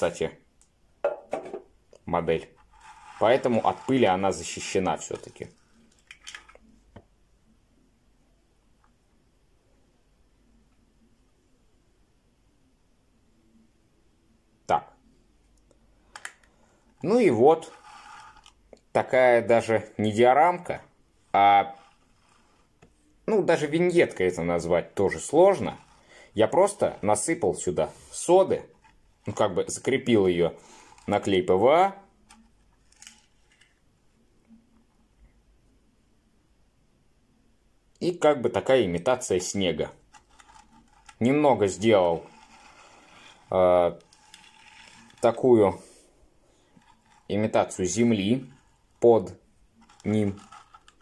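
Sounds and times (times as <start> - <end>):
light scraping on tabletop: 2.4 - 6.5, 17.0 - 18.6, 21.2 - 23.0, 25.0 - 29.4, 40.0 - 49.0, 49.8 - 51.0.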